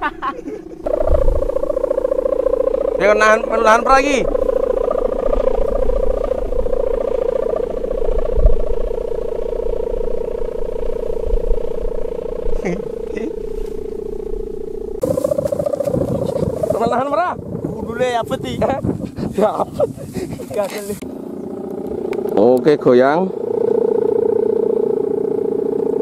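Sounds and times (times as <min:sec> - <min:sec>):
wind rushing: 0:00.0 - 0:21.0
kite hummer buzzing drone: 0:00.0 - 0:26.0.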